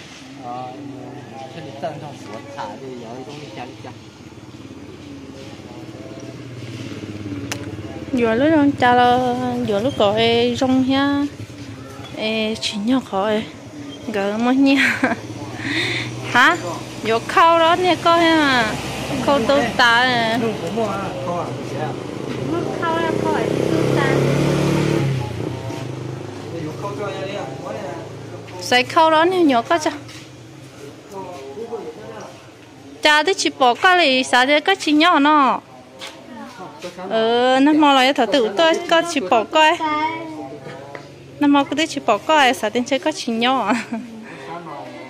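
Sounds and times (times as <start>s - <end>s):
voices talking: 0.2s - 45.0s
motorcycle engine running: 2.1s - 31.1s.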